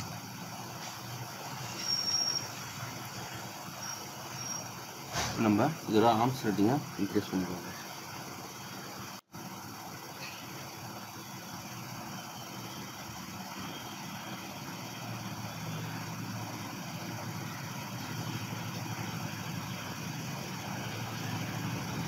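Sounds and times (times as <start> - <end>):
vehicle engine rumbling: 8.0 - 22.0.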